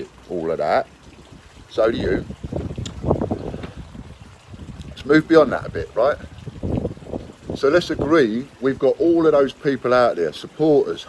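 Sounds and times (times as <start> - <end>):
wind rumbling on microphone: 1.0 - 9.3.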